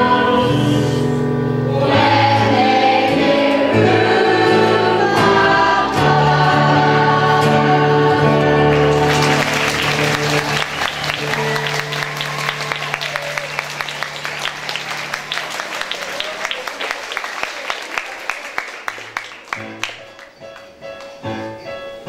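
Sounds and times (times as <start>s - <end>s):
young singers singing in chorus: 0.0s - 9.6s
keyboard accompaniment: 0.0s - 16.2s, 18.8s - 22.0s
audience applause: 8.5s - 20.8s.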